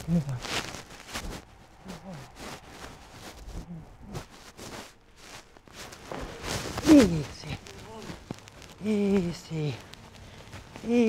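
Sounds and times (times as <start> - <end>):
short low voice sounds: 0.0 - 0.5, 1.8 - 2.3, 3.6 - 4.2, 6.8 - 8.2.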